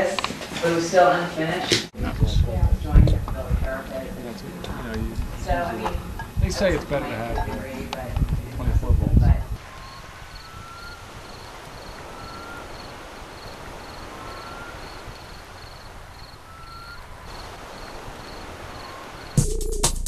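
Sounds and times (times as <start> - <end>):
steady hiss: 1.9 - 20.0
faint high chirp: 9.6 - 12.9, 16.4 - 17.3.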